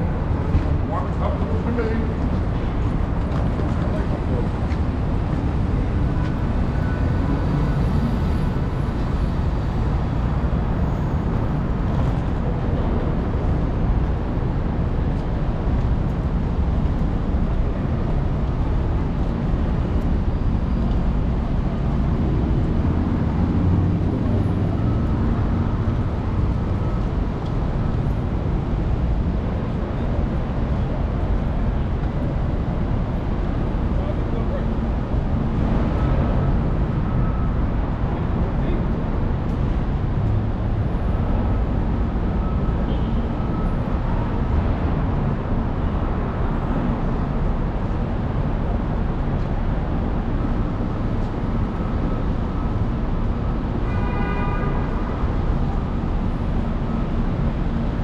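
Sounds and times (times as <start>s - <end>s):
traffic rumble: 0.0s - 58.0s.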